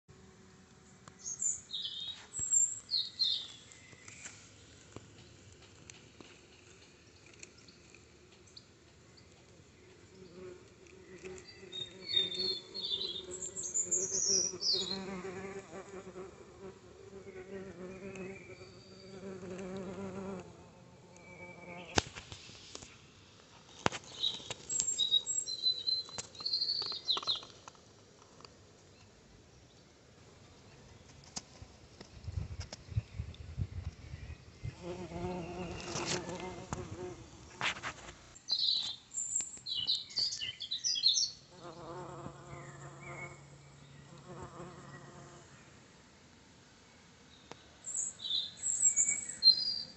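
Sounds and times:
bumblebee buzzing: 10.2s - 22.0s, 34.7s - 37.6s, 41.5s - 45.5s.

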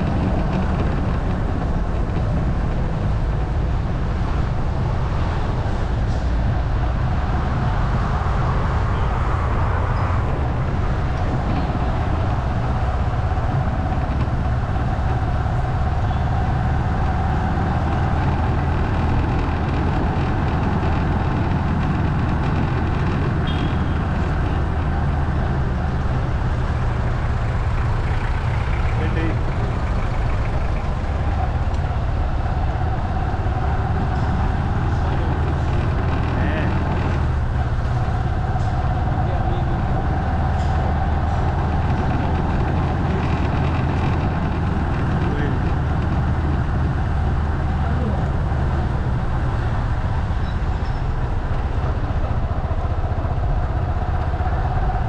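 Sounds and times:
motorbike engine running: 0.0s - 4.8s, 9.9s - 55.0s.

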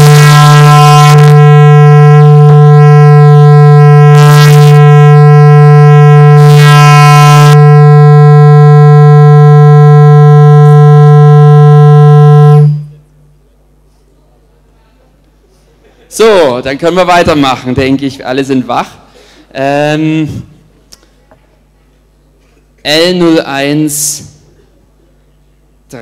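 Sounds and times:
loud low buzzing tone: 0.0s - 15.3s, 16.1s - 21.1s, 22.0s - 26.0s.

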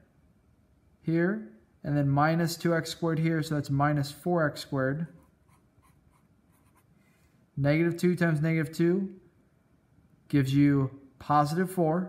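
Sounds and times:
marker scratching on paper: 5.1s - 7.0s.

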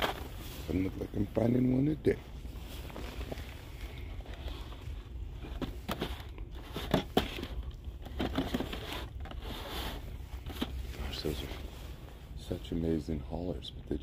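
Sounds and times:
cardboard packaging clicks and crinkles: 0.0s - 0.9s, 2.8s - 11.5s
steady low hum: 0.0s - 14.0s.

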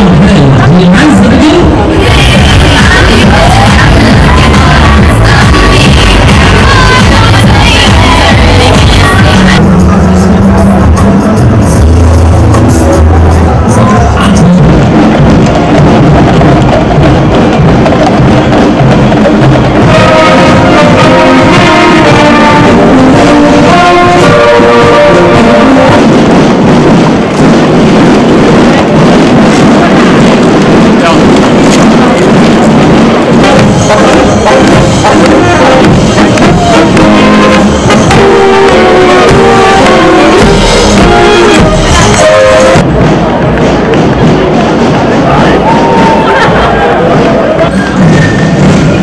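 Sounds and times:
crowd voices: 0.0s - 49.0s
electronic dance music: 0.0s - 49.0s.

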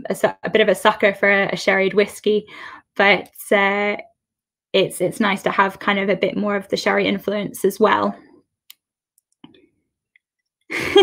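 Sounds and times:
woman's voice: 0.0s - 4.0s, 4.8s - 8.2s, 10.7s - 11.0s.

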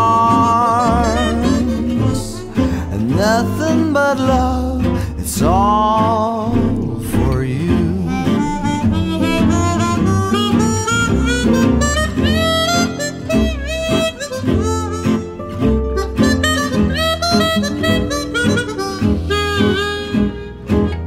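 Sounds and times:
harmonica melody: 0.0s - 5.6s, 6.5s - 21.0s
double bass: 0.0s - 21.0s
strummed acoustic guitar: 0.0s - 21.0s.

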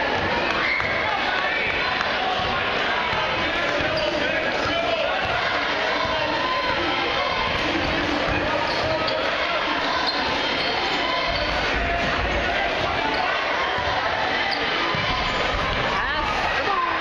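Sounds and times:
hum of crowd voices: 0.0s - 17.0s.

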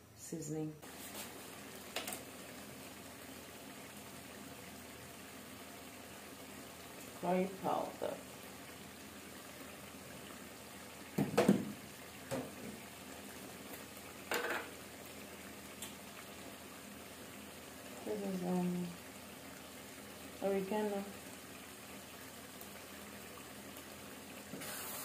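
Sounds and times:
stew simmering and bubbling: 0.8s - 25.0s.

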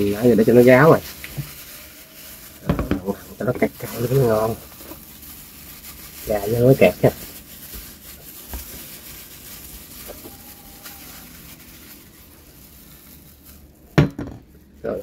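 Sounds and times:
gloved hand rubbing fish: 0.0s - 14.0s.

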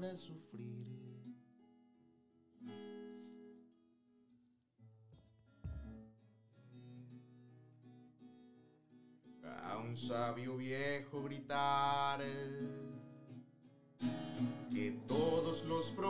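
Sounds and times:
low thump: 5.7s - 6.0s
classical guitar strummed softly: 8.6s - 16.0s
person singing: 14.7s - 16.0s.

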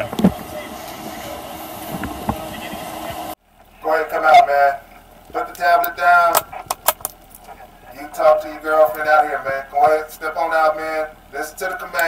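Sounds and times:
low hum of idling vehicles: 0.0s - 12.0s.

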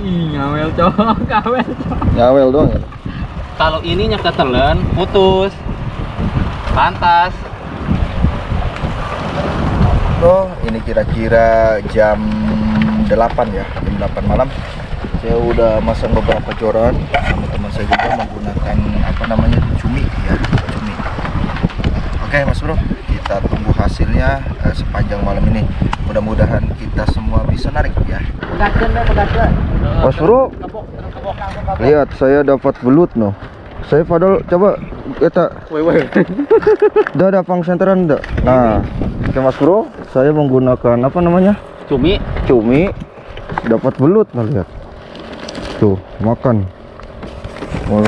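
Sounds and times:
rumbling background: 0.0s - 35.7s
people talking: 10.2s - 14.5s, 15.2s - 21.1s, 22.3s - 43.0s, 43.6s - 44.7s, 45.8s - 46.7s
low motor hum: 11.9s - 13.9s.

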